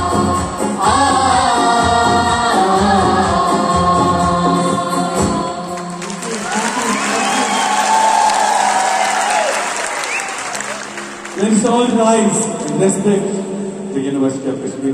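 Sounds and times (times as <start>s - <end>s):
group singing in unison: 0.0s - 6.4s
audience applause: 6.0s - 12.0s.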